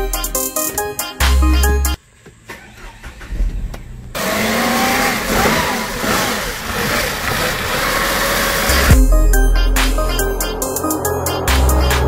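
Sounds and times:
car engine starting whir: 2.4s - 12.0s.

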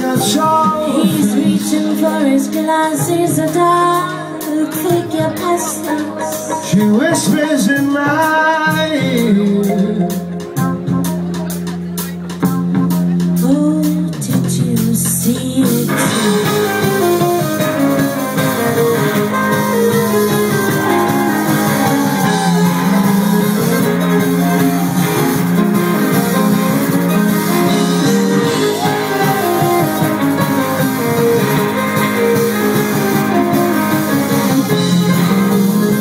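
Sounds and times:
guitars and bass: 0.0s - 36.0s
live band playing: 0.0s - 36.0s.

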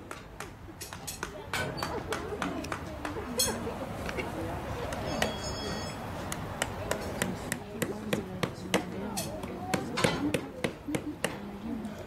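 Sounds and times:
hammer tapping on a hoof: 0.1s - 3.2s.

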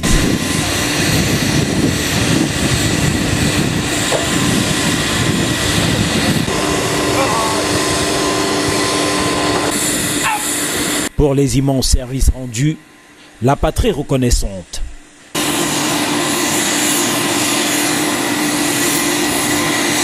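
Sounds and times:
aircraft engine running: 0.0s - 13.1s, 13.7s - 20.0s.

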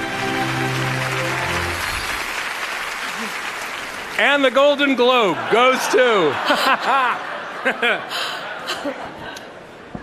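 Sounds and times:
audience applause: 0.0s - 8.3s.

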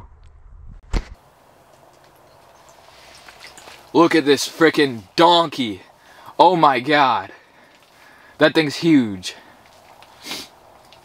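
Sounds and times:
low steady hiss: 1.2s - 11.0s.

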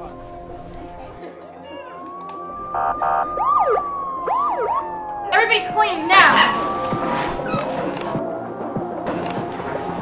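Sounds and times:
police siren wailing and yelping: 2.0s - 7.6s
short siren blasts: 2.5s - 7.6s.

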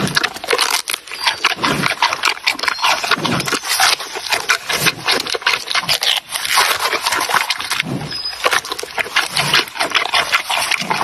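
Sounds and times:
panda crunching bamboo: 0.0s - 11.0s.

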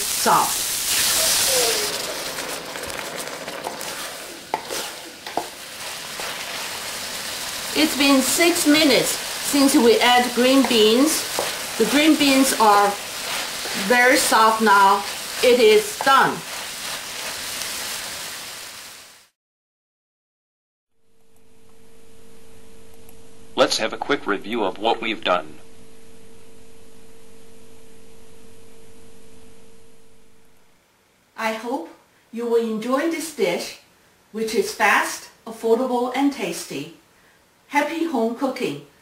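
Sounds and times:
green beans sizzling: 0.0s - 19.4s.

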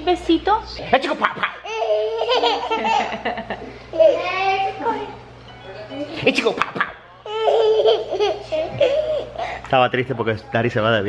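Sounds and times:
woman laughing: 1.1s - 3.8s, 6.1s - 9.6s
toddler laughing: 1.2s - 4.3s, 6.5s - 9.6s.

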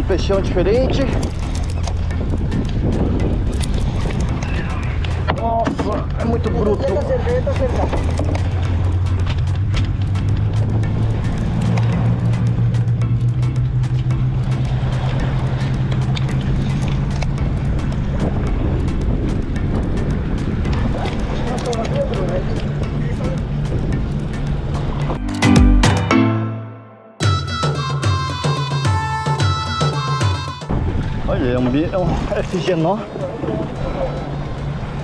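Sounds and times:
boat engine droning: 0.0s - 25.6s, 26.6s - 35.0s.

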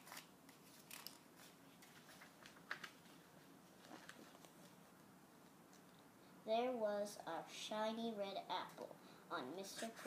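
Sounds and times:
paper pages rustling and turning: 0.0s - 4.8s.

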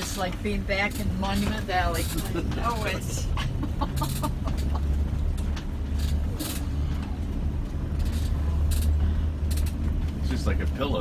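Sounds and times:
suspension knocks and rattles: 0.0s - 11.0s
vehicle rumbling over bumpy road: 0.0s - 11.0s.

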